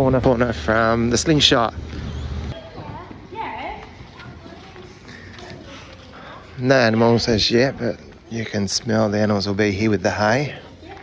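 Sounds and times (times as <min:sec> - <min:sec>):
distant voices echoing: 0:00.0 - 0:11.0.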